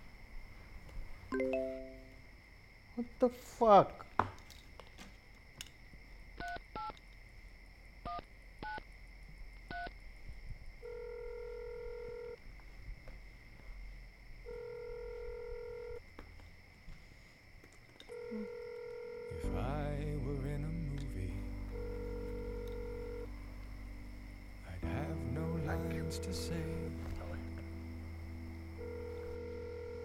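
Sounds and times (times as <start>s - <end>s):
telephone ringing tone: 10.8s - 12.4s, 14.5s - 16.0s, 18.1s - 19.5s, 21.7s - 23.3s, 28.8s - 30.0s.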